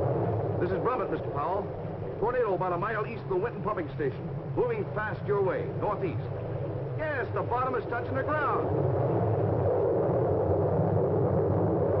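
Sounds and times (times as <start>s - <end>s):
tornado wind roar: 0.0s - 12.0s.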